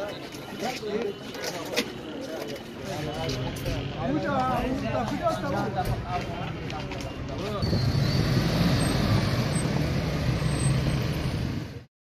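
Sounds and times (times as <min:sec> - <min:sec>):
road noise: 0:00.0 - 0:11.9
vehicle engine rumble: 0:05.8 - 0:11.9.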